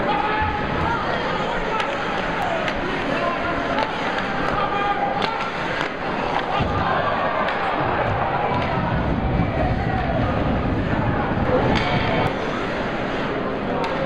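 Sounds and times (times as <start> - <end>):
crowd voices: 0.0 - 14.0
sticks and puck clicking: 1.8 - 4.6, 5.2 - 6.6, 13.8 - 14.0.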